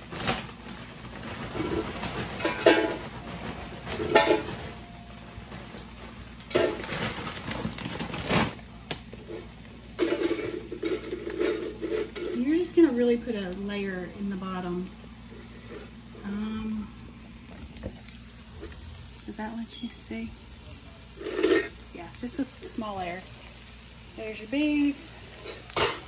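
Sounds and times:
plastic chip bag crinkling: 0.0 - 14.2, 15.1 - 19.8.

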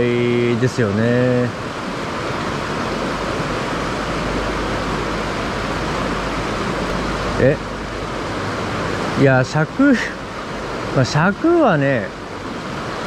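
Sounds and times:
stream running over rocks: 0.0 - 13.0.

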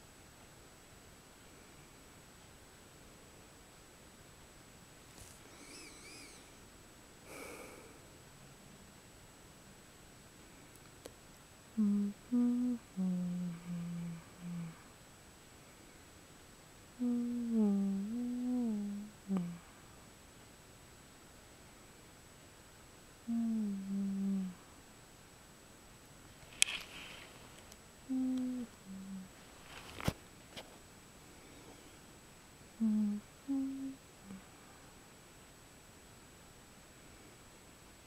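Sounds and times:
woman humming: 5.5 - 6.6, 11.8 - 14.9, 17.0 - 19.8, 23.2 - 24.8, 28.1 - 29.4, 32.8 - 34.6.

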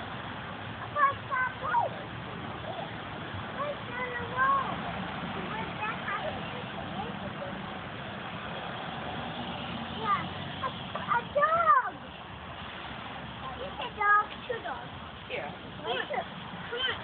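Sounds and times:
children's high-pitched calls: 0.8 - 6.8, 9.8 - 12.2, 15.8 - 17.0.

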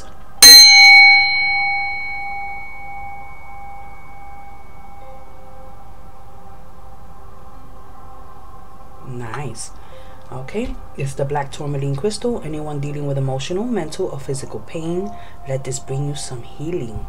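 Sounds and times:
mallet striking bowl: 0.4 - 5.3
singing bowl ringing: 0.4 - 6.8.

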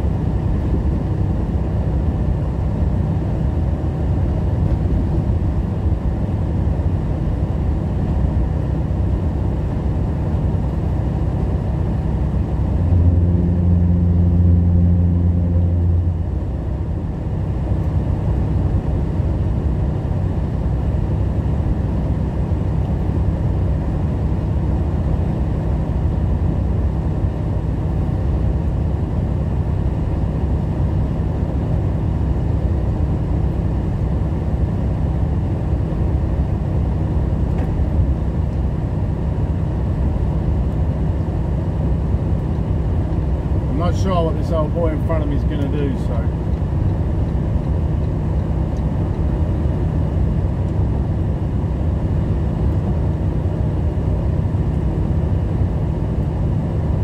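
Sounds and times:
low hum: 0.0 - 57.0
truck engine and road noise: 0.0 - 57.0.

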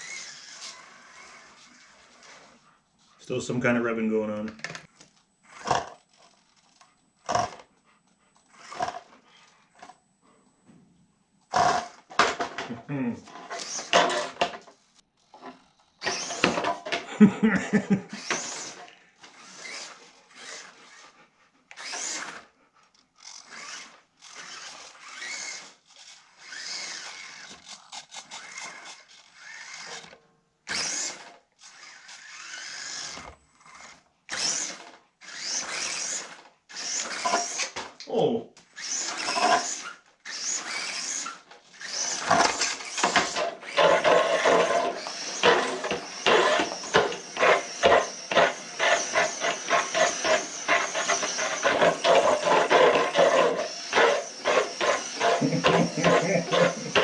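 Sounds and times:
electric motor and gears whirring: 0.0 - 2.6, 3.4 - 7.7, 8.4 - 10.0, 11.4 - 21.1, 21.7 - 57.0
tyres scrabbling on concrete: 42.1 - 57.0.

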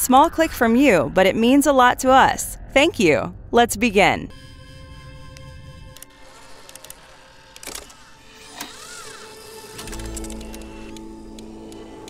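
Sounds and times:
mechanical whirring glides: 4.3 - 12.0
music drone: 4.3 - 12.0
robotic arm clicks: 5.3 - 12.0.

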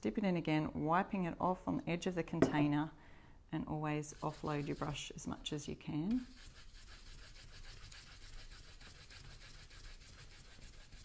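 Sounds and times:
brush scrubbing on wood: 4.2 - 5.0, 6.2 - 11.0.

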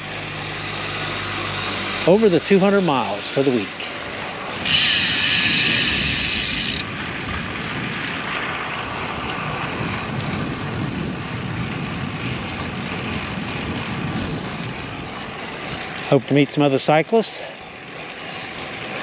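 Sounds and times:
wind and road noise: 0.0 - 19.0.

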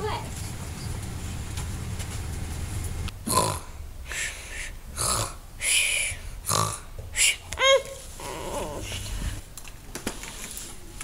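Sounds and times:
child fake-snoring: 3.3 - 3.7, 5.0 - 5.4.

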